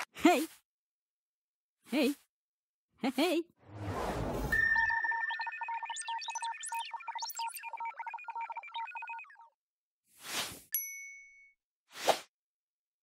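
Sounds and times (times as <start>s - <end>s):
whoosh: 3.6s - 4.8s
electronic bleeps and chirps: 3.8s - 9.6s.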